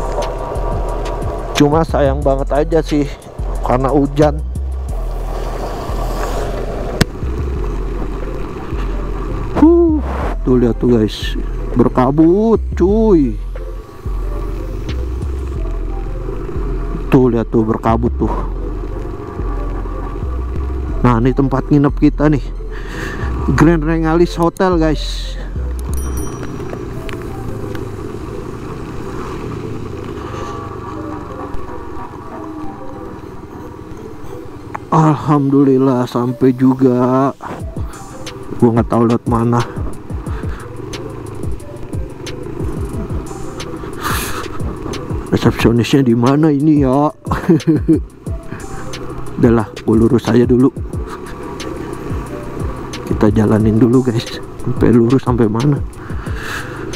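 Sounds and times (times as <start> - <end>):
tyre hiss on wet road: 0.0 - 1.6, 4.6 - 10.4, 22.7 - 23.5, 26.5 - 31.2, 37.3 - 50.1, 50.7 - 56.9
wind rush on microphone: 0.0 - 21.8
scooter engine hum: 0.0 - 56.9.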